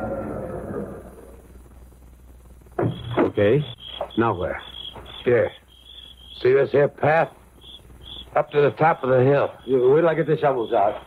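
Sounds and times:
quiet low hum: 0:00.0 - 0:11.0.

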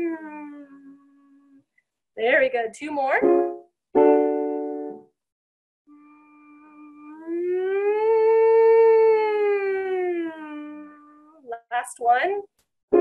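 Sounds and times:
woman humming a slide: 0:00.0 - 0:01.7, 0:05.9 - 0:11.4.

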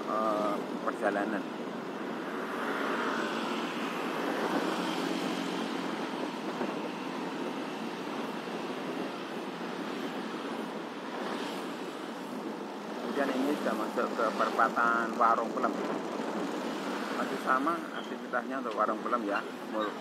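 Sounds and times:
bus engine: 0:00.0 - 0:18.1
motorcycle engines: 0:00.0 - 0:20.0
road and wind noise: 0:00.0 - 0:20.0.

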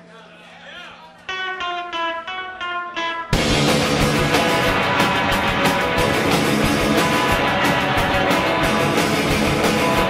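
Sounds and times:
band playing punk song: 0:01.3 - 0:10.0
electric guitar picking notes: 0:01.3 - 0:10.0.

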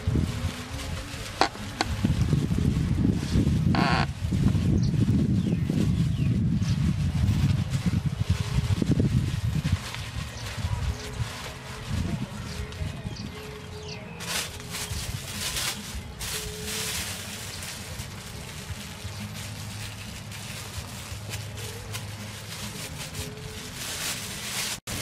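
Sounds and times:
plastic bags crinkling: 0:08.1 - 0:25.0.

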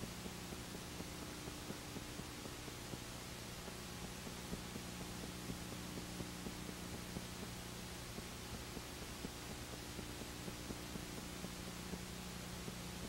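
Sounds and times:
low hum and hiss: 0:00.0 - 0:13.0
faint regular ticks: 0:00.1 - 0:13.0.

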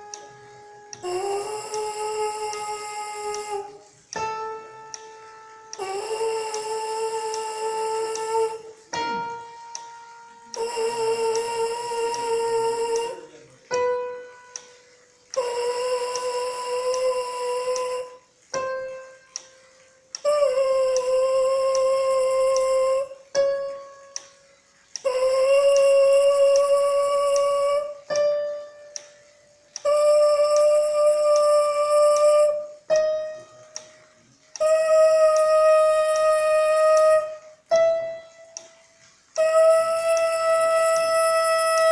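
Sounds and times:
quiet reference tones: 0:00.0 - 0:41.9.

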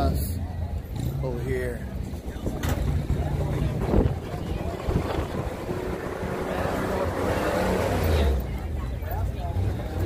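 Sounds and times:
murmur of people talking: 0:00.0 - 0:10.0
wind buffeting microphone: 0:02.1 - 0:06.4.

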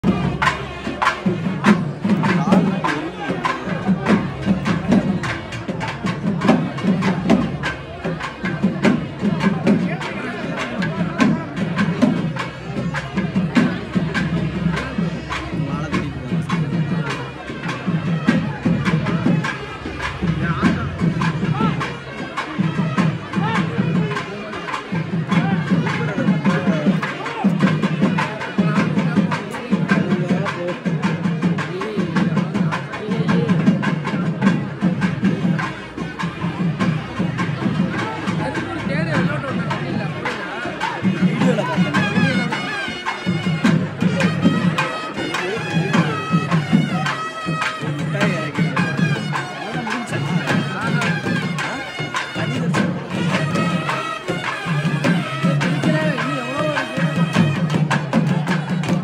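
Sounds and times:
crowd talking and calling: 0:00.0 - 0:59.0
drums playing fast rhythm: 0:00.0 - 0:59.0.

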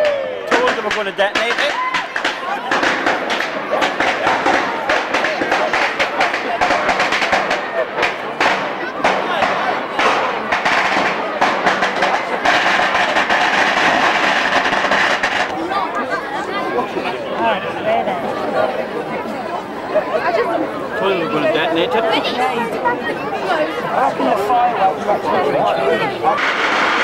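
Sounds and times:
fireworks crackling and popping: 0:00.5 - 0:15.7, 0:26.3 - 0:27.0.

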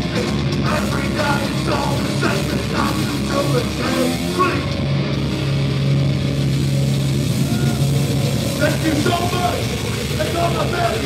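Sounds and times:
stage noise din: 0:00.0 - 0:11.0.

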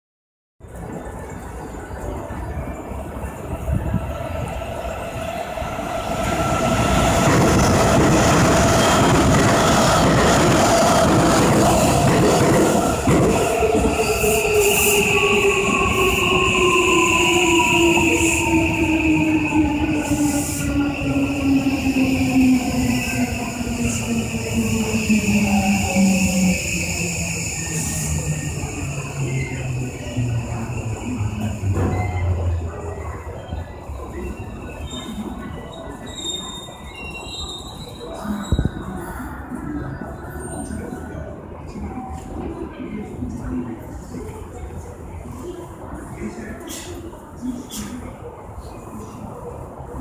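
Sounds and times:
train passing with rushing wheels: 0:00.7 - 0:36.0.

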